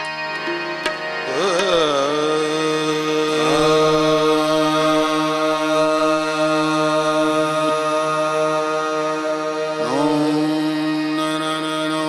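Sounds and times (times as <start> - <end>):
harmonium: 0.0 - 12.0
person singing long note: 0.5 - 12.0.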